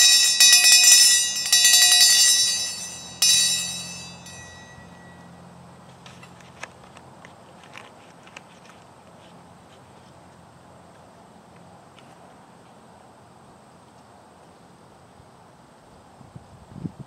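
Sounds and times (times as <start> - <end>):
hand bell ringing: 0.0 - 5.3.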